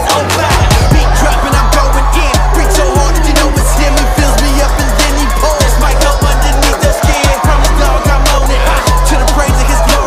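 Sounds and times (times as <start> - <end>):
hip-hop beat with heavy bass: 0.0 - 10.0.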